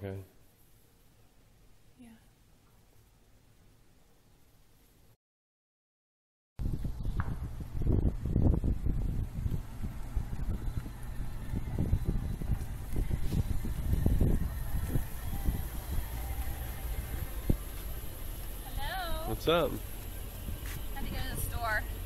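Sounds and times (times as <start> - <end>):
car engine rumbling at low speed: 6.6 - 22.0.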